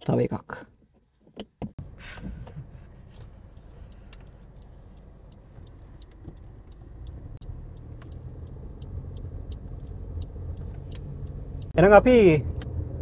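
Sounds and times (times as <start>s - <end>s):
road and engine rumble in car cabin: 1.6s - 13.0s
faint light ticks: 2.4s - 11.8s.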